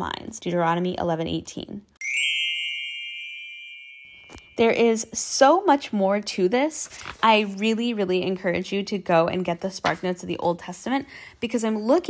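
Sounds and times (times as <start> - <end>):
bell-like chime: 2.0 - 4.7.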